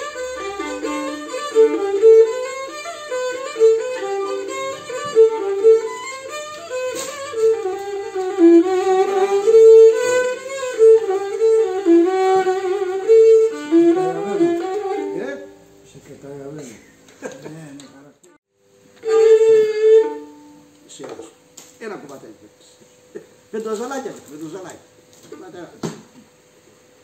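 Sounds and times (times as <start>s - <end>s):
bowed lyra folk melody: 0.0s - 15.8s, 19.0s - 20.7s.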